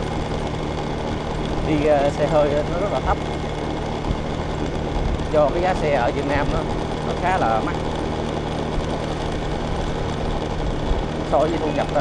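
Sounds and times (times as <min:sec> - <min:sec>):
road and wind noise: 0:00.0 - 0:12.0
scooter engine running: 0:00.0 - 0:12.0.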